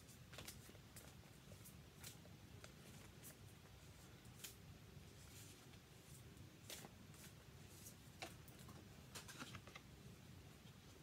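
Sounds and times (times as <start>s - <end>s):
cards being shuffled by hand: 0.0s - 4.6s, 5.2s - 9.9s.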